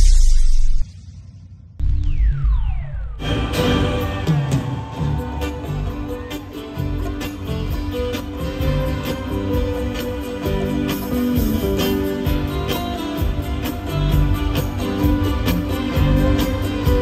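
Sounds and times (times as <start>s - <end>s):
drum kit steady beat: 3.2s - 17.0s
live band playing: 3.2s - 17.0s.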